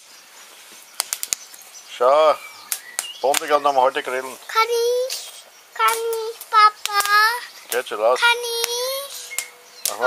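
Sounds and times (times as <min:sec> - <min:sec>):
fire burning: 0:00.0 - 0:10.0
fire crackling: 0:00.0 - 0:10.0.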